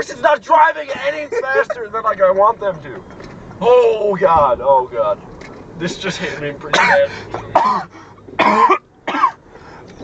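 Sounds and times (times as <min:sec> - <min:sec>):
car cabin hum: 0:00.0 - 0:10.0
man coughing: 0:06.7 - 0:09.4.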